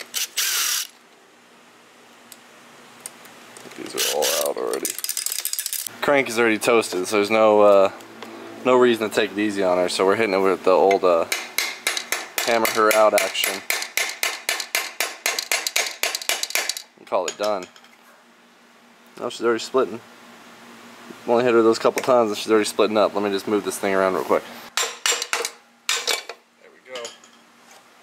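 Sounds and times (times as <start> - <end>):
hammer striking metal engine case: 10.8 - 16.8.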